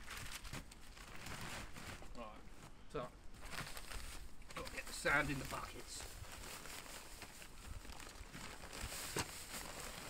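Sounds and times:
plastic bag rustling: 0.0 - 10.0
person speaking: 4.5 - 6.1.

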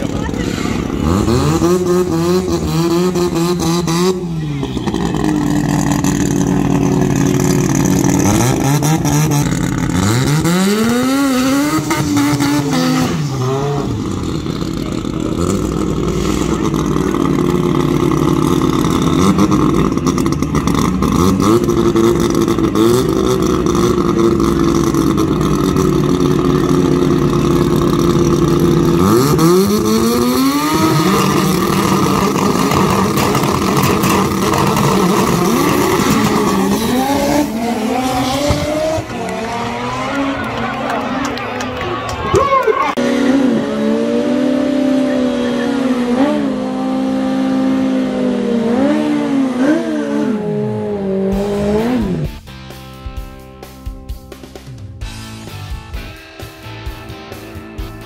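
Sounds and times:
drag racing engines revving: 0.0 - 52.4.

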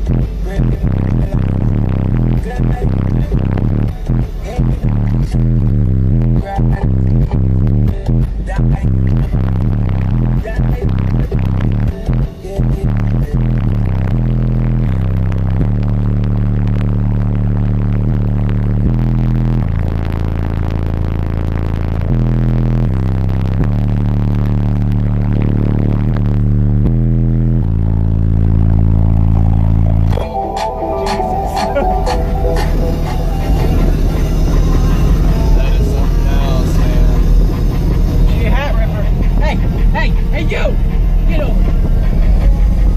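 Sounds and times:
loud bass line through subwoofers: 0.0 - 42.9.

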